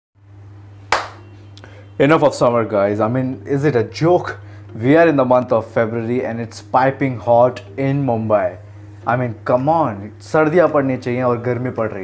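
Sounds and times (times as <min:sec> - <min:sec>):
low electrical hum: 0:00.2 - 0:12.0
hand clap: 0:00.9 - 0:01.3.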